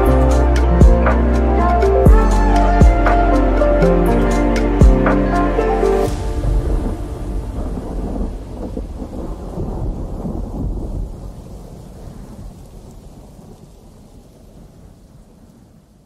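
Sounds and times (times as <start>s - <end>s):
rain: 0.0s - 16.0s
rolling thunder rumble: 0.0s - 16.0s.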